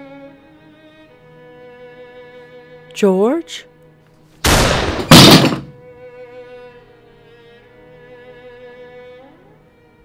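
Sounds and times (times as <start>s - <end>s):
bowed string music: 0.0s - 4.0s, 5.6s - 10.0s
loud heavy thump: 4.5s - 5.8s.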